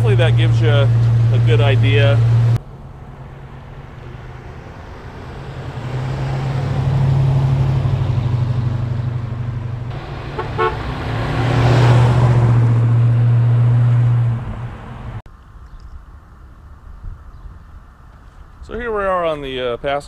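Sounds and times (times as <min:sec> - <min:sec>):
car engine driving by: 0:00.0 - 0:15.2.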